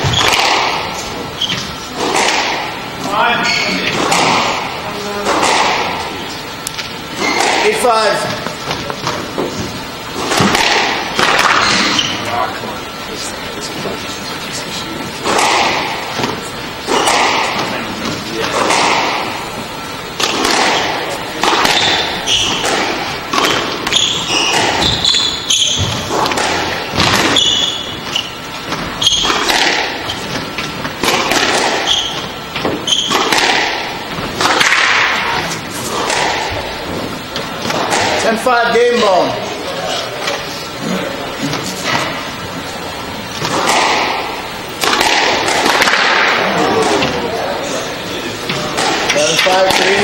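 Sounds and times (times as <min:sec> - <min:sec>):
squash ball knocks: 0:00.0 - 0:00.9, 0:10.2 - 0:12.0, 0:20.2 - 0:27.9, 0:28.6 - 0:37.0, 0:43.4 - 0:47.1, 0:48.6 - 0:50.0
shoes squeaking on hardwood floor: 0:00.0 - 0:02.2, 0:03.1 - 0:04.5, 0:07.1 - 0:10.5, 0:11.4 - 0:12.5, 0:20.7 - 0:33.5.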